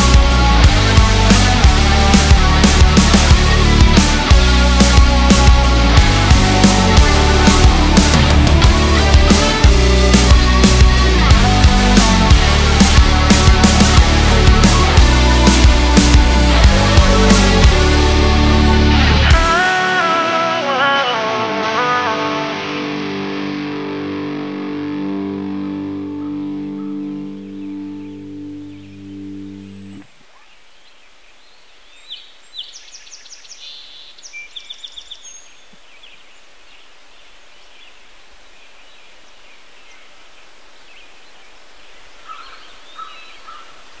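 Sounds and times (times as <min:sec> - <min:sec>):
guitar chord ringing: 0:00.0 - 0:30.0
bird chirps: 0:26.2 - 0:36.9, 0:41.9 - 0:44.0.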